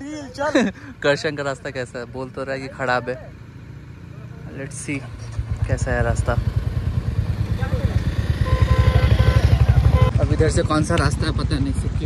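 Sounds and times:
motorcycle engines idling: 0:00.0 - 0:12.0.

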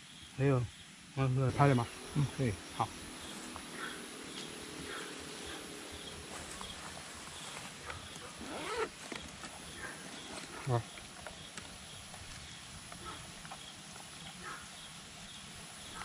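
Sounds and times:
night insects chirping: 0:00.0 - 0:16.0.

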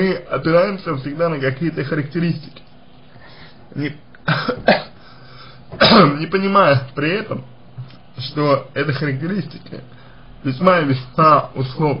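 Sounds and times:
man speaking: 0:00.0 - 0:02.7, 0:03.7 - 0:04.8, 0:05.8 - 0:12.0
man coughing: 0:04.2 - 0:05.0, 0:05.7 - 0:06.2.

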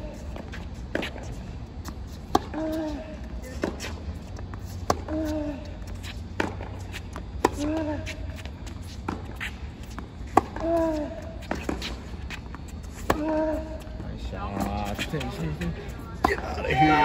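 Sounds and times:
racquets striking tennis ball: 0:00.2 - 0:13.8.

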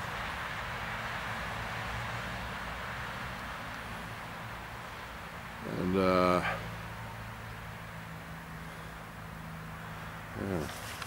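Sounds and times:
low hum of distant road traffic: 0:00.0 - 0:11.0.

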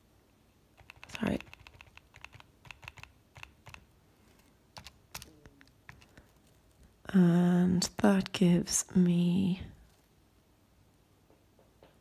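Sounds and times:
calculator key clicks: 0:00.8 - 0:03.8.

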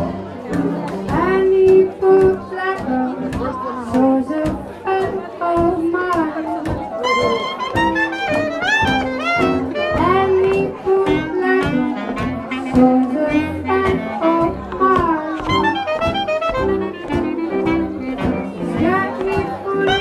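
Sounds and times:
jazz rhythm section: 0:00.0 - 0:20.0
trumpet melody: 0:07.0 - 0:10.4, 0:11.8 - 0:14.6, 0:15.5 - 0:18.8
clarinet melody: 0:07.0 - 0:20.0.

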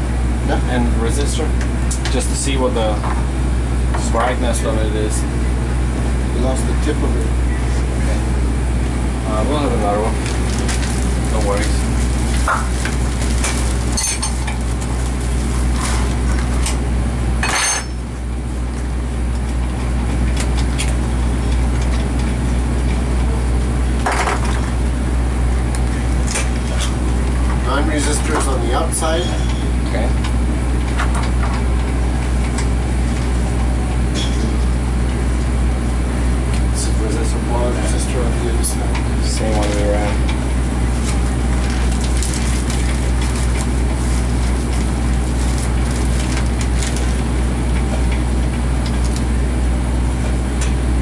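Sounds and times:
ignition test stand humming: 0:00.0 - 0:51.0.

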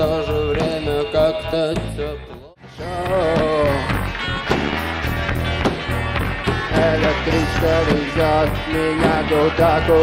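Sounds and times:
rock band playing: 0:00.0 - 0:10.0.

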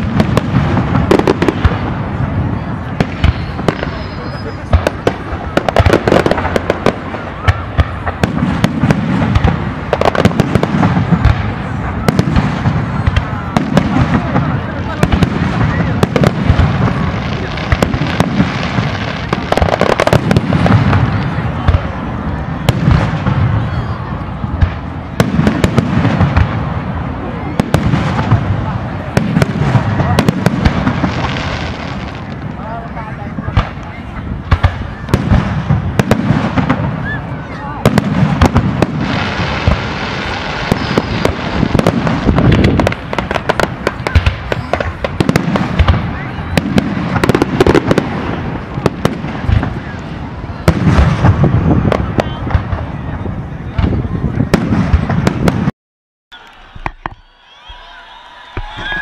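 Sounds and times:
deep fireworks booms: 0:00.0 - 0:55.7
fireworks bangs and crackles: 0:00.0 - 0:55.7, 0:56.7 - 0:59.0.

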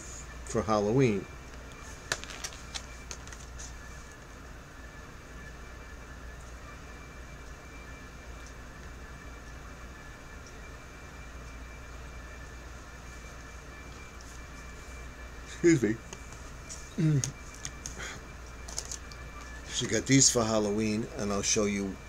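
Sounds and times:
low room hum: 0:00.0 - 0:22.0
packaging clicks: 0:02.0 - 0:03.5, 0:18.6 - 0:19.5.

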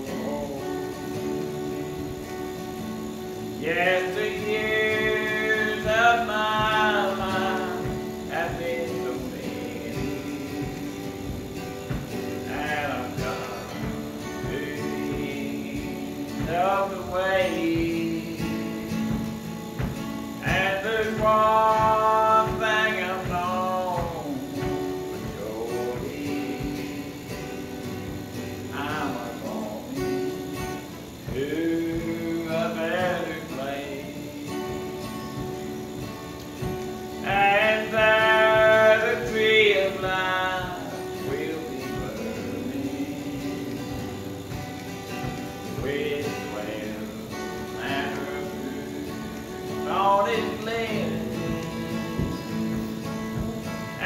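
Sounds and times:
instrumental accompaniment: 0:00.0 - 0:54.0
man singing gospel song: 0:00.0 - 0:54.0.

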